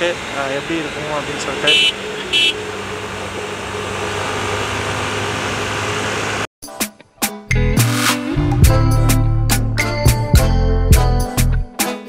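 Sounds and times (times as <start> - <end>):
motorcycle engine cruising: 0.0 - 6.5
wind and road noise: 0.0 - 6.5
music: 6.6 - 12.0.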